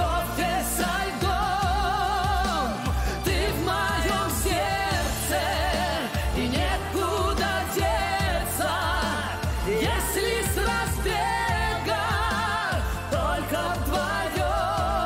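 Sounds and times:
man singing: 0:00.0 - 0:15.0
steady bass line: 0:00.0 - 0:15.0.

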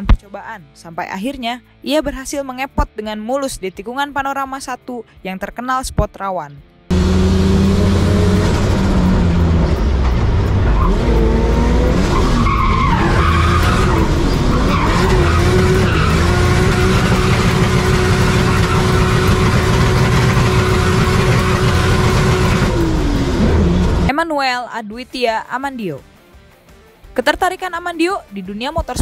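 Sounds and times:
car engine revving hard: 0:06.9 - 0:24.1
tyres squealing: 0:09.9 - 0:22.8.

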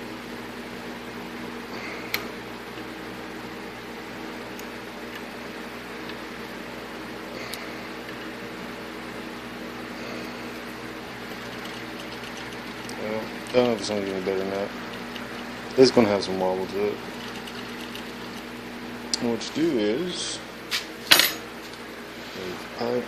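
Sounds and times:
bench grinder motor humming: 0:06.0 - 0:19.8.

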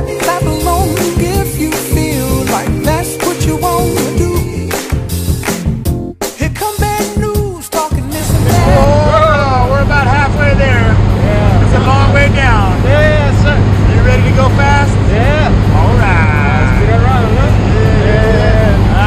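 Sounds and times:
people talking and calling out: 0:07.9 - 0:19.0
plane engine drone in cabin: 0:08.3 - 0:19.0.

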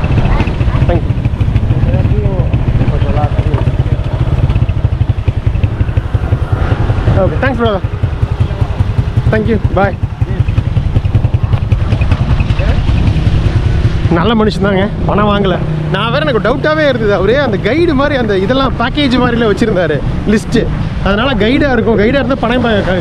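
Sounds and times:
wind buffeting microphone: 0:00.0 - 0:15.9
motorcycle engine running: 0:00.0 - 0:23.0.

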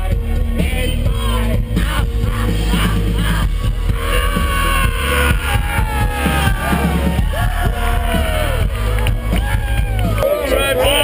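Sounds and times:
heavy steady bass: 0:00.0 - 0:10.2
live band through pa: 0:00.0 - 0:11.0
sliding melody: 0:02.6 - 0:10.2.

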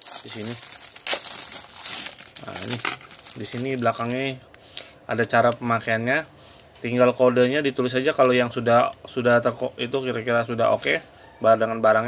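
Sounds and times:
plastic sleeve crinkling: 0:00.0 - 0:04.5.

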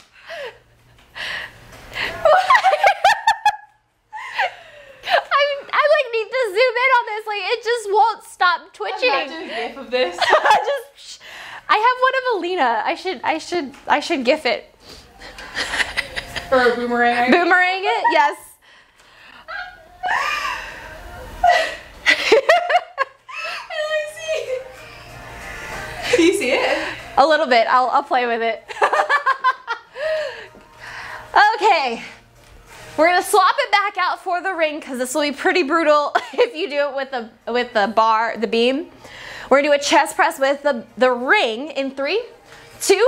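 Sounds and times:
women laughing and giggling: 0:01.9 - 0:05.6, 0:09.0 - 0:11.0, 0:15.2 - 0:18.5, 0:19.4 - 0:24.8, 0:28.6 - 0:30.6, 0:36.1 - 0:36.8.

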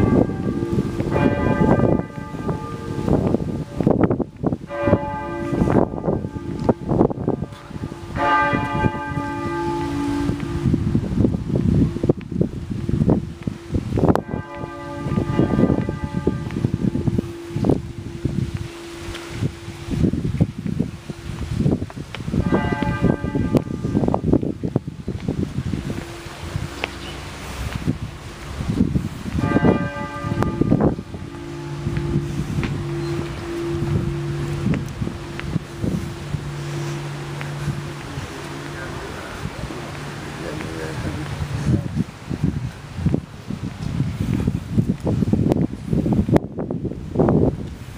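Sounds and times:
church bells ringing: 0:00.0 - 0:12.2, 0:12.8 - 0:21.6, 0:22.3 - 0:41.8
steady low hum: 0:00.0 - 0:44.7
wind rumbling on microphone: 0:00.0 - 0:47.9.

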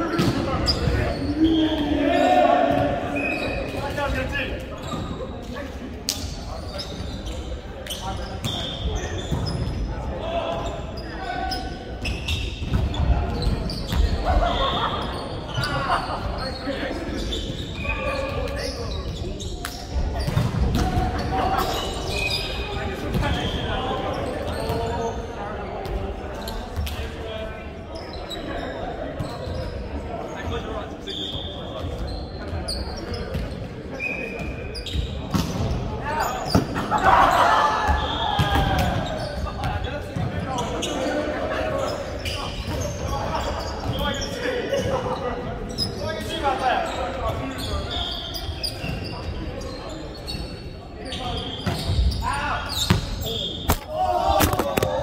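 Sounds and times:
sneakers squeaking on court: 0:00.0 - 0:01.9, 0:02.7 - 0:05.5, 0:06.1 - 0:26.9, 0:28.0 - 0:55.0
players shouting and calling: 0:00.0 - 0:55.0.

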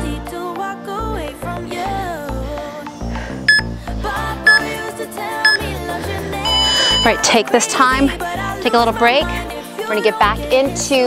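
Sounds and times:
background music with steady beat: 0:00.0 - 0:11.0
interval timer beeps: 0:03.5 - 0:03.7, 0:04.5 - 0:04.7, 0:05.4 - 0:05.7, 0:06.5 - 0:07.2.

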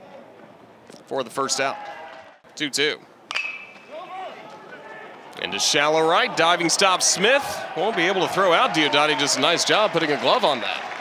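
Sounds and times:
metal bat hitting ball: 0:03.3 - 0:03.9.

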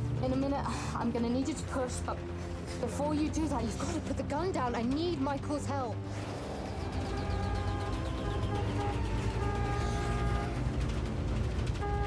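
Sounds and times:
ambulance rumble: 0:00.0 - 0:12.0
film score held notes: 0:00.0 - 0:12.0.

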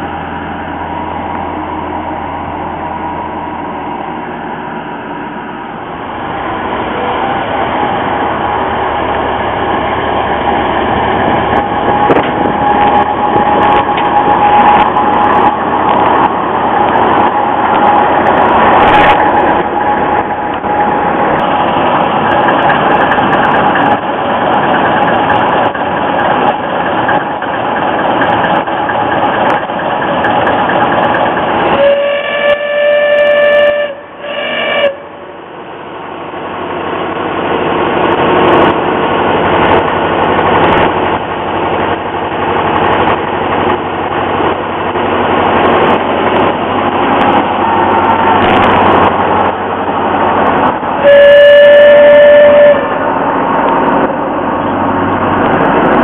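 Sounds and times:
diesel locomotive engine running: 0:00.0 - 0:56.0
locomotive horn blasts: 0:31.7 - 0:35.3, 0:51.0 - 0:53.1.

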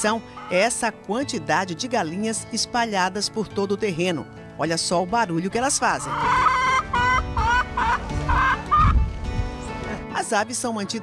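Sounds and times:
hens clucking: 0:00.4 - 0:00.7, 0:05.9 - 0:08.9.

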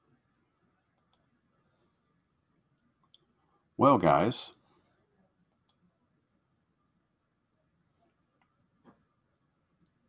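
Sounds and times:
computer mouse clicks: 0:01.0 - 0:01.3, 0:05.5 - 0:05.8
man speaking: 0:03.8 - 0:04.6.

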